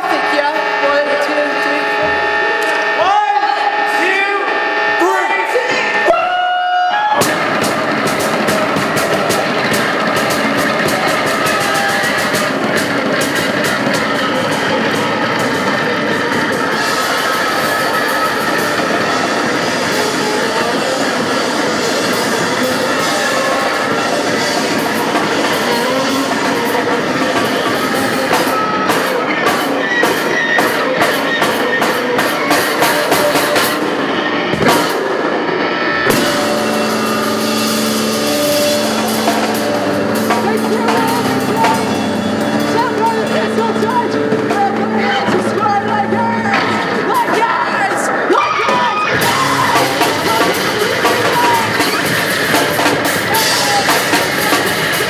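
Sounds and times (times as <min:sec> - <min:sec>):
drum kit: 0:00.0 - 0:55.0
electric bass guitar: 0:04.6 - 0:55.0.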